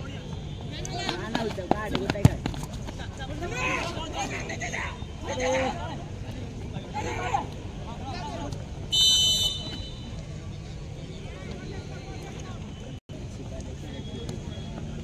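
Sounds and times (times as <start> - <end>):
referee's whistle blast: 8.9 - 10.0.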